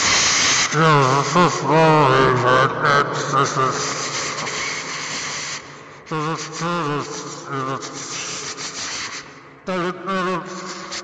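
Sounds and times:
warbling distorted voice-like sounds: 0:00.7 - 0:04.8, 0:06.1 - 0:08.6, 0:09.7 - 0:11.0.

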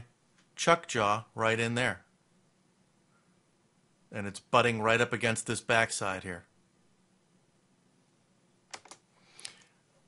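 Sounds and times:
computer key clicks: 0:08.7 - 0:09.6.

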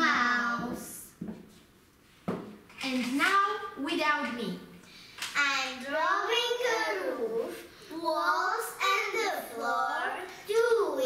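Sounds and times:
girls chanting nursery rhyme: 0:00.0 - 0:00.9.

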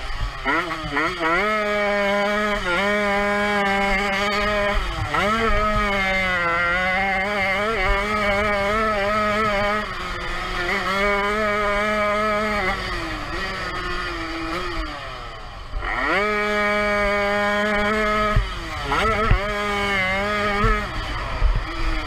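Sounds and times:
two-stroke engine revving: 0:00.0 - 0:22.0.

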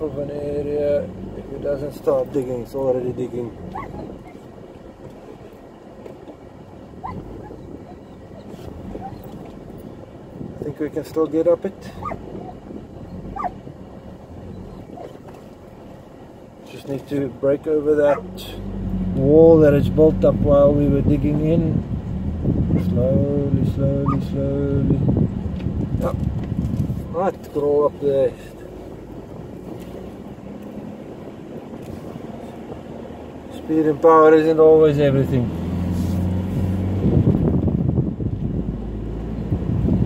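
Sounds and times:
wind buffeting microphone: 0:00.0 - 0:16.4, 0:17.9 - 0:33.5, 0:35.4 - 0:40.0
pickup engine running: 0:00.0 - 0:40.0.

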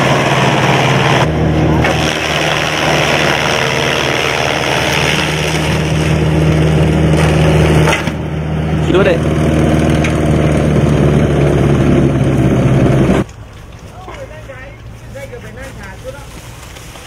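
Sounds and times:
electric motor hum: 0:00.0 - 0:13.2.

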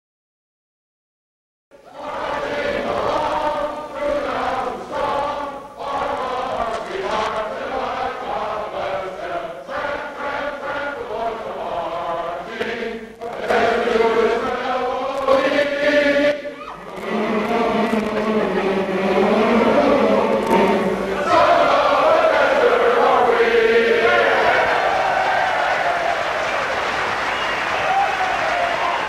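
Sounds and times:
crowd singing in unison: 0:01.8 - 0:29.0.

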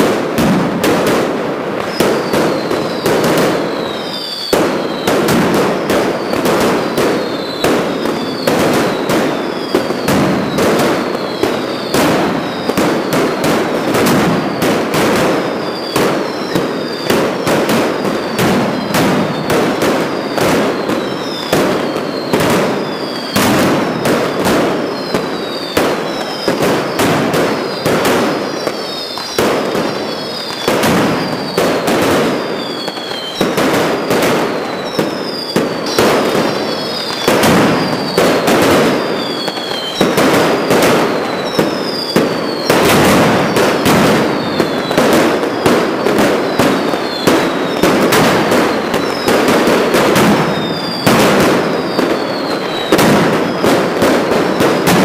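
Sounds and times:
firecrackers banging: 0:00.0 - 0:55.0
short falling whistles: 0:01.9 - 0:05.1, 0:07.1 - 0:13.4, 0:20.1 - 0:27.0, 0:28.5 - 0:31.6, 0:32.5 - 0:33.6, 0:39.2 - 0:40.2, 0:41.1 - 0:43.6, 0:44.3 - 0:45.0, 0:48.7 - 0:49.3, 0:50.5 - 0:53.6.

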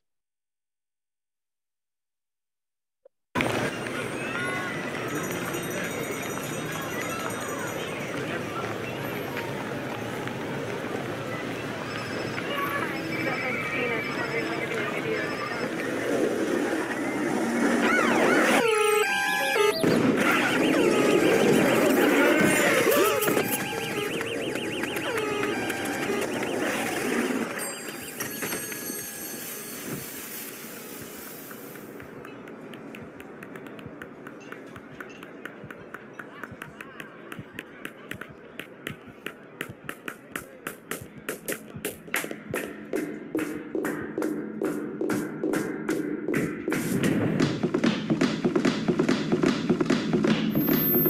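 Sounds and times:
city noise: 0:03.4 - 0:51.0
overlapping voices: 0:20.3 - 0:27.4.

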